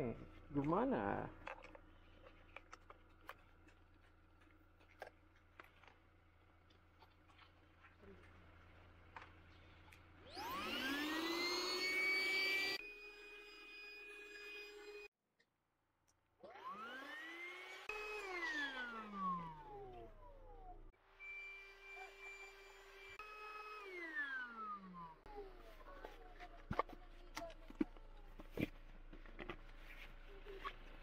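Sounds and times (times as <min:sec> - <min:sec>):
electric air pump whining: 0:10.2 - 0:15.1, 0:16.5 - 0:27.0.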